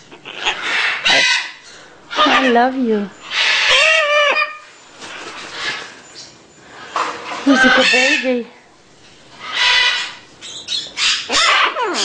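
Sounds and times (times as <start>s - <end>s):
baby macaw squawking: 0.0s - 4.6s, 7.5s - 8.4s, 9.4s - 12.0s.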